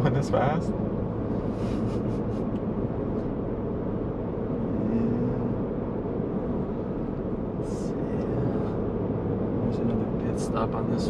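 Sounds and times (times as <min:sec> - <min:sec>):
truck engine and road noise: 0:00.0 - 0:11.0.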